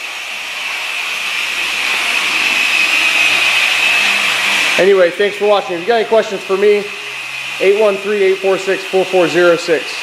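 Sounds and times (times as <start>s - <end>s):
polishing machine whirring: 0.0s - 10.0s.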